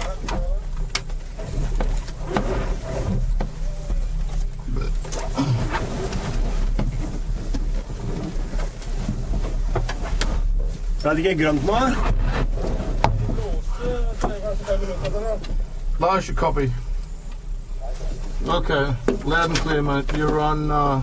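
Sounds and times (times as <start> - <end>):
faint voices: 0.0 - 5.8, 17.6 - 21.0
steady low hum: 0.0 - 21.0.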